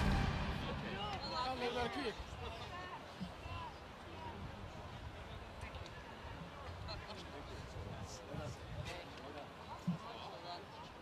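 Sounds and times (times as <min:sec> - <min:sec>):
background music: 0:00.0 - 0:01.4.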